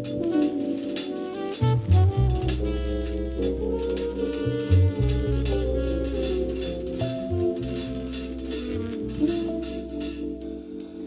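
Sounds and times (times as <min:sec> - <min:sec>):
drum kit beat: 0:00.0 - 0:11.0
sustained horn and chord tones: 0:00.0 - 0:11.0
electric bass line: 0:01.4 - 0:10.8.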